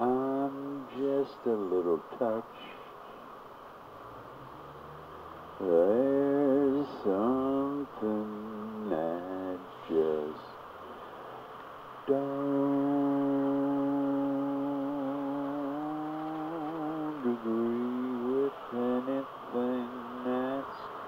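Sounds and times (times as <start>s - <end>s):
person singing a long note: 0.0s - 2.7s, 5.6s - 10.5s, 12.0s - 20.9s.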